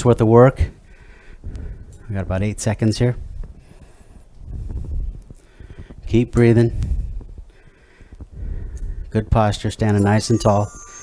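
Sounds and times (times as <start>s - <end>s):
man breathing into microphone: 0.8s - 2.1s, 3.6s - 6.1s, 6.7s - 9.1s.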